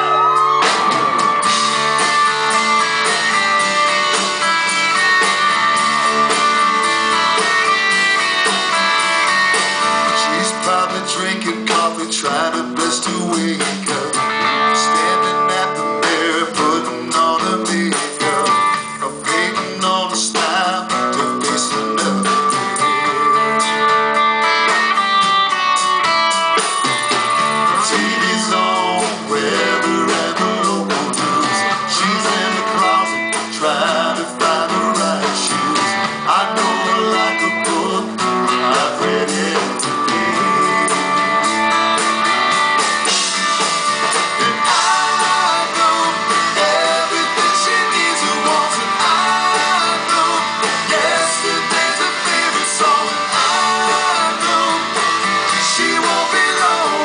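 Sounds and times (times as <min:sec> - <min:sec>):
bass guitar: 0:00.0 - 0:57.0
drum kit: 0:00.0 - 0:57.0
electric guitars: 0:00.0 - 0:57.0
man singing into microphone: 0:10.0 - 0:23.7, 0:27.7 - 0:41.3, 0:44.4 - 0:57.0.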